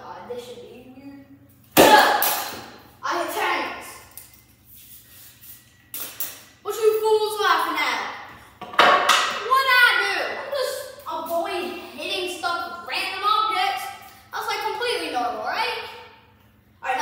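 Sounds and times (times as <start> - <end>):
bat hitting baseball crack: 1.8 - 2.8
boy exclaiming loudly: 9.4 - 16.0.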